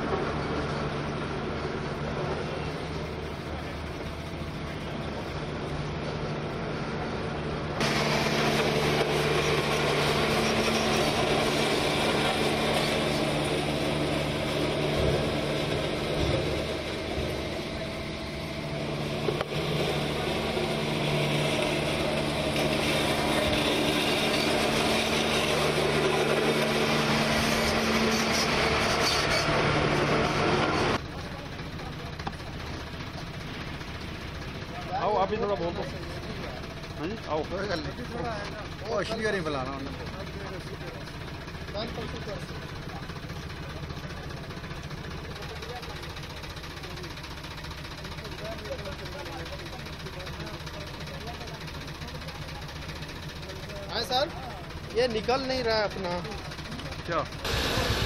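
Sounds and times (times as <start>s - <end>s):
diesel engines humming: 0.0s - 58.0s.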